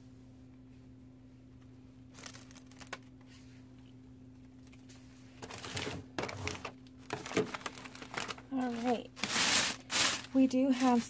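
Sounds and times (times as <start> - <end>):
steady low hum: 0.0 - 11.0
plastic wrap crinkling: 2.1 - 3.1, 5.4 - 11.0.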